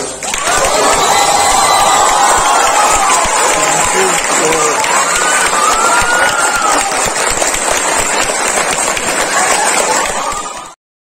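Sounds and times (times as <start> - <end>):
voices calling and cheering: 0.2 - 8.1, 9.1 - 10.8
audience applauding: 0.2 - 10.8.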